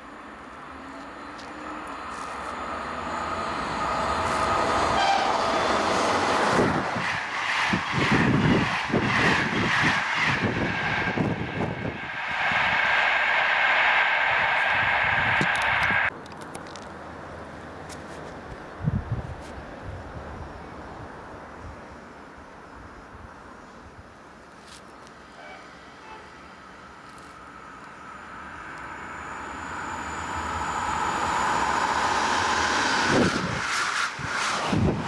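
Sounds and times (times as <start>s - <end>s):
train high whine: 0.0s - 16.1s, 25.2s - 35.0s
passenger train passing: 0.0s - 17.9s, 25.2s - 35.0s.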